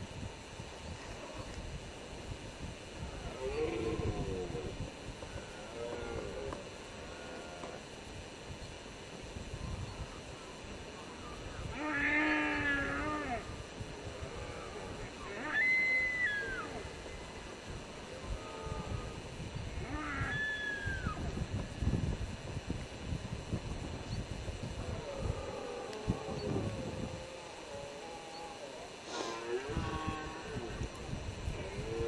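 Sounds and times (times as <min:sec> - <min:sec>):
deer stag roaring: 0:11.7 - 0:13.5
high whistle-like deer calls: 0:15.4 - 0:16.8, 0:20.1 - 0:21.2.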